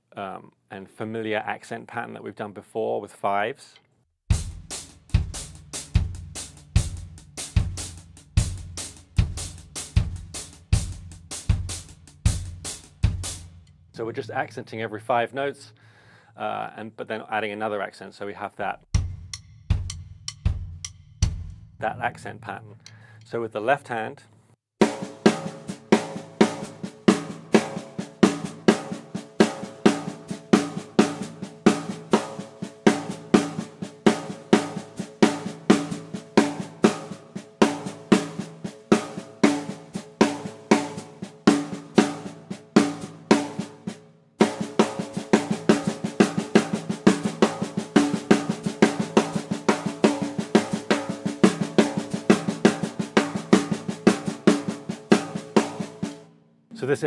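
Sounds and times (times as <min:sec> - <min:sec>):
snare drum ghost notes: 0:24.8 - 0:57.0.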